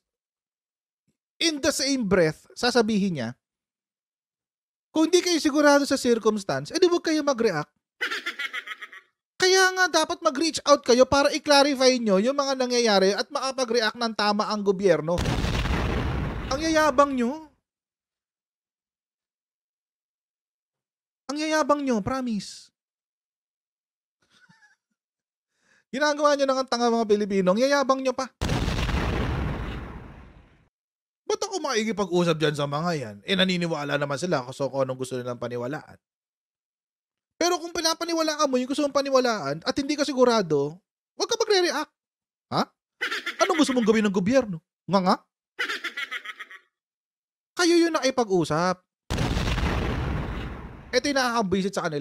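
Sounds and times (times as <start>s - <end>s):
man speaking: 16.5s - 17.5s, 43.4s - 45.2s, 50.9s - 52.0s
man's faint suppressed laugh: 24.3s - 24.8s
man chuckling: 24.4s - 24.8s.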